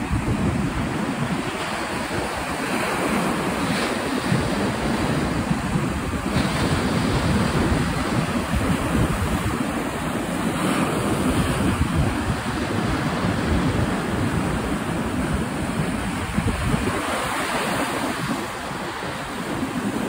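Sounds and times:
sea surf breaking: 0:00.0 - 0:20.0
wind buffeting microphone: 0:00.0 - 0:20.0.

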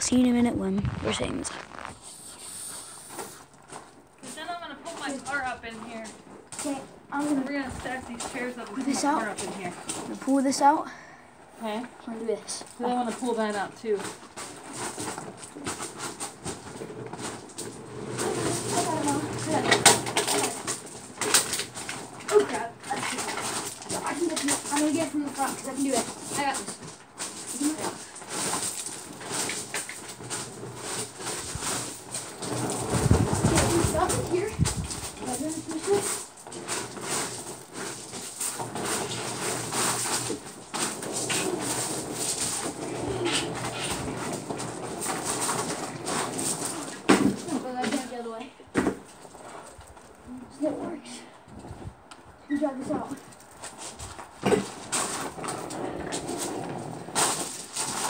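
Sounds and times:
knocks and clatter of objects: 0:12.6 - 0:50.2, 0:52.9 - 0:58.0.

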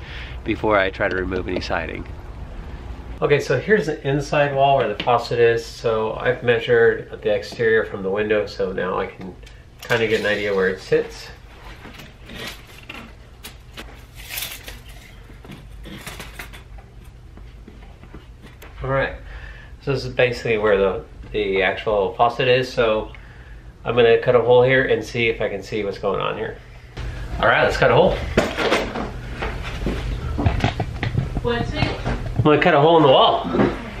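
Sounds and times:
steady low hum: 0:00.0 - 0:34.0
hard objects clattering: 0:11.7 - 0:17.2
tape measure scraping and clicking: 0:12.3 - 0:15.3.

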